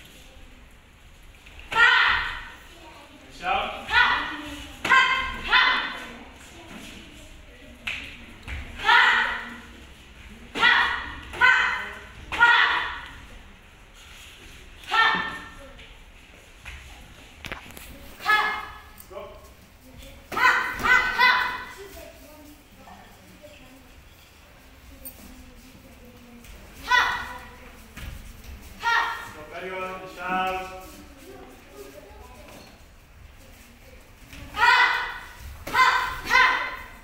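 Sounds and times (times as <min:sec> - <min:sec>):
sharp high-pitched yells: 0:01.7 - 0:02.5, 0:34.6 - 0:36.9.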